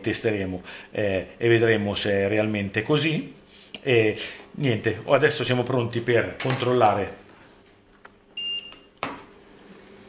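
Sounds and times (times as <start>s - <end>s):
digital scale beep: 8.4s - 8.9s.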